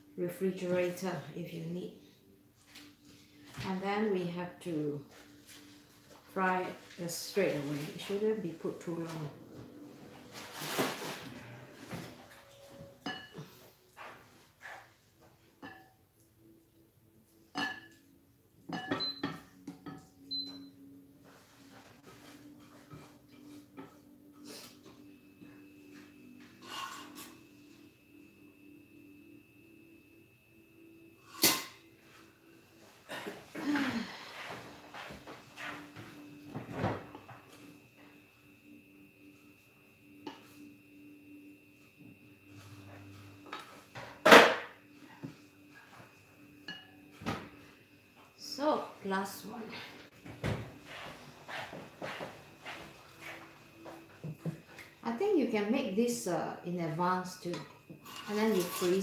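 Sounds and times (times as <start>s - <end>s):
faint high whine: 15.6s - 59.0s.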